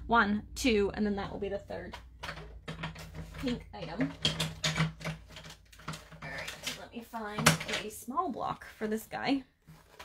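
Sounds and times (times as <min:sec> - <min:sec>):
small hard items clicking: 0:01.8 - 0:08.0.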